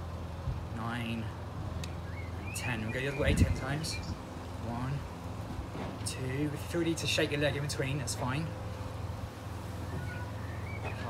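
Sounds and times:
faint bird chirps: 0:09.9 - 0:11.0.

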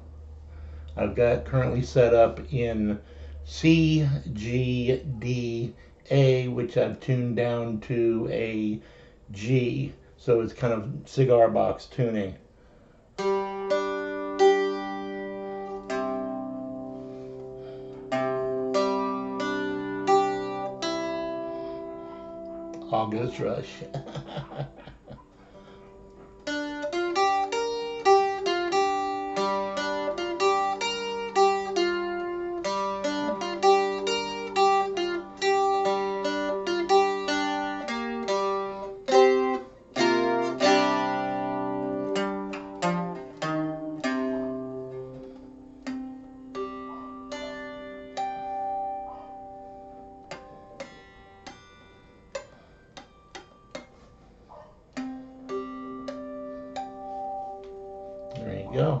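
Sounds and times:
plucked mandola: 0:13.2 - 0:59.0.

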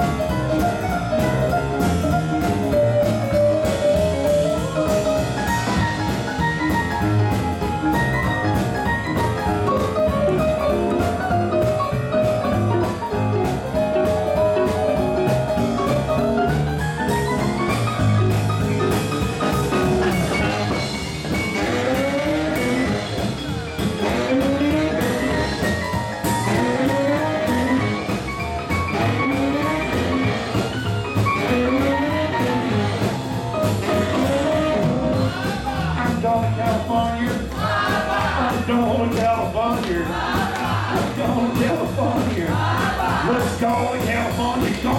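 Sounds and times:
piano solo in fast runs: 0:00.0 - 0:44.9
swing band playing: 0:00.0 - 0:44.9.

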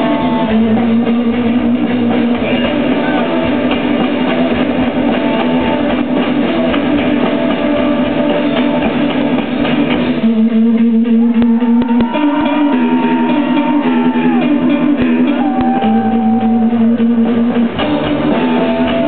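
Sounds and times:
bass guitar: 0:00.0 - 0:19.0
drums: 0:00.0 - 0:19.0
electric guitars: 0:00.0 - 0:19.0.

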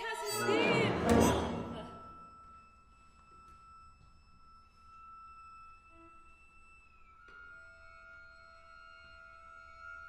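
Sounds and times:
faint high sustained instrument note: 0:01.4 - 0:10.0.

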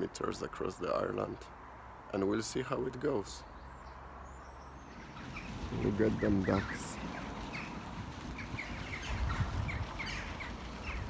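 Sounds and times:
man speaking: 0:02.1 - 0:03.4, 0:05.7 - 0:07.0.

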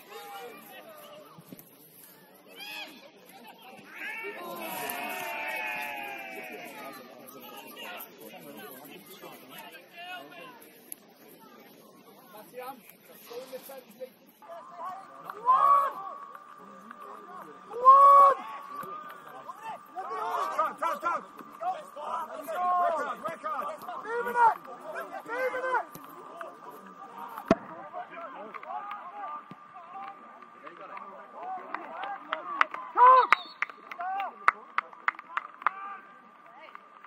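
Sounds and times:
people shouting and calling: 0:03.7 - 0:08.0, 0:14.4 - 0:33.4.

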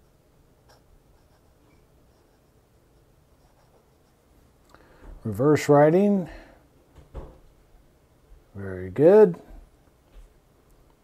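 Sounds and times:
pen nib scratching paper: 0:00.6 - 0:04.2.

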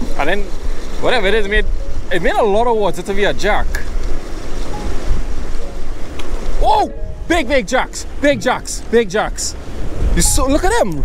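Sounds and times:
sea washing around boat: 0:00.0 - 0:11.0
wind rumbling on microphone: 0:00.0 - 0:11.0.

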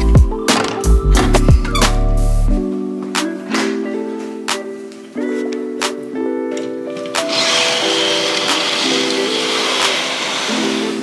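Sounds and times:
background music with plucked notes: 0:00.0 - 0:11.0
curtain sliding along track: 0:07.0 - 0:11.0.

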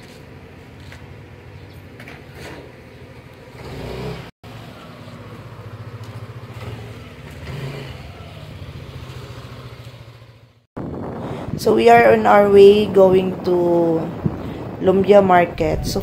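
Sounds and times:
motorcycle engine running: 0:03.5 - 0:11.5.

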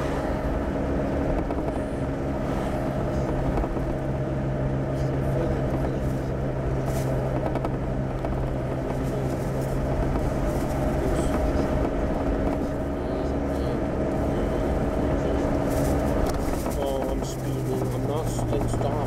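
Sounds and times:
car cabin engine and tyre hum: 0:00.0 - 0:19.0.

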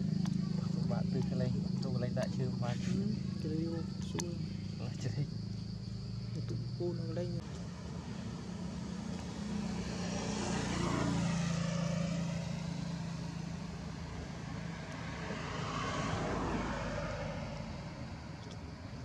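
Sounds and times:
vehicle engine passing by: 0:00.0 - 0:19.0.

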